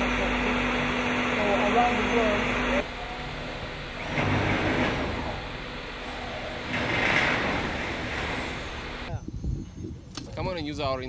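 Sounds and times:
construction site noise: 0.0s - 9.3s.

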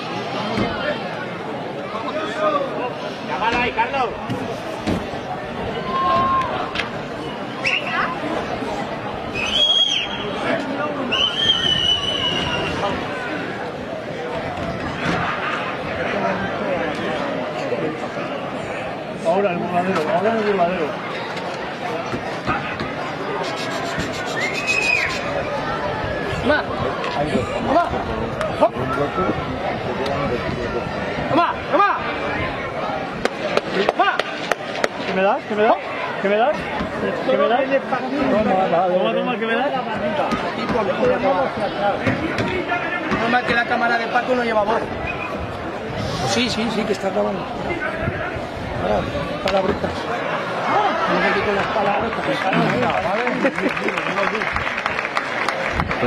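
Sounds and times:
crowd voices babbling: 0.0s - 56.0s
high whistles: 7.6s - 8.1s, 9.3s - 10.4s, 11.1s - 12.8s, 23.4s - 25.3s.

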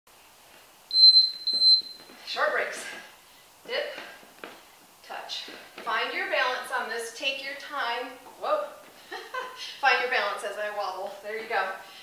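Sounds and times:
high electronic timer beeps: 0.9s - 2.0s.

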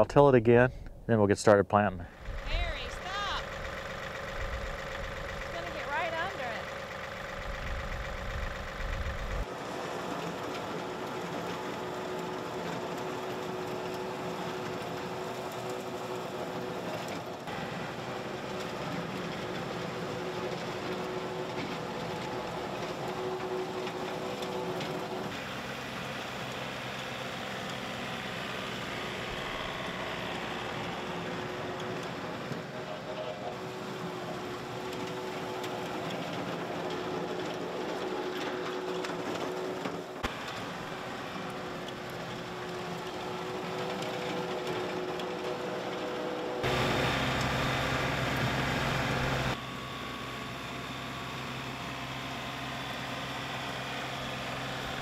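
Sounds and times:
diesel tractor engine running: 2.0s - 55.0s
tiller tines churning soil: 3.1s - 49.6s.

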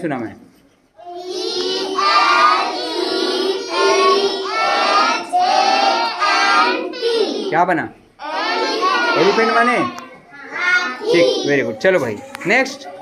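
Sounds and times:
girls chanting in unison: 1.1s - 7.5s, 8.2s - 11.5s.

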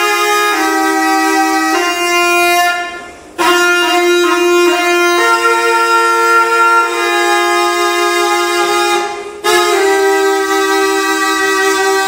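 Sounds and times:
buzzy reed wind instrument: 0.0s - 12.0s.

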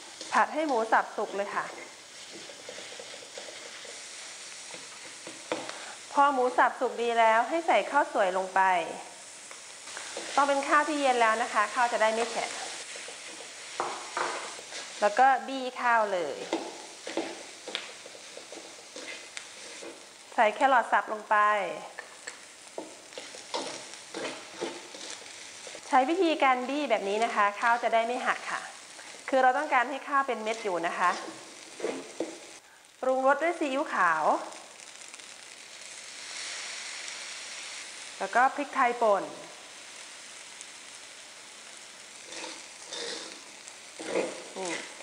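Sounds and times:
spatula scraping metal wok: 0.0s - 6.1s, 9.8s - 20.3s, 22.2s - 29.3s, 30.3s - 32.6s, 41.7s - 45.0s
light frying sizzle: 0.0s - 45.0s.

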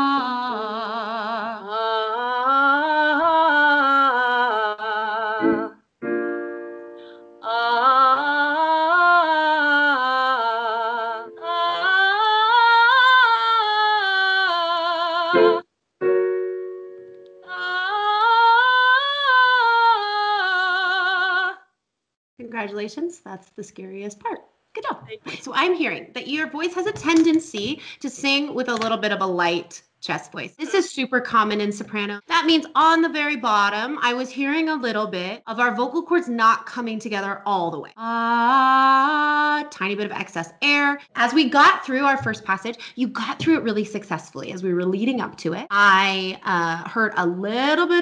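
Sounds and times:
woman singing vocal scales: 0.0s - 5.9s, 7.2s - 15.6s, 17.4s - 21.6s, 37.9s - 42.4s
piano chords: 5.4s - 7.6s, 15.4s - 17.6s.

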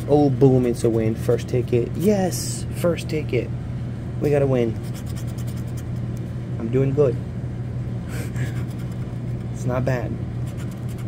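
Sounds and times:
steady low hum: 0.0s - 11.0s
lottery ticket being scraped: 0.4s - 1.4s, 4.8s - 6.1s.

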